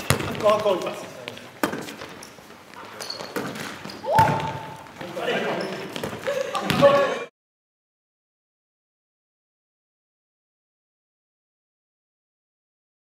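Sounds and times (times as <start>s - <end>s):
volleyball being hit: 3.4s - 4.8s
players shouting and calling: 3.9s - 7.3s.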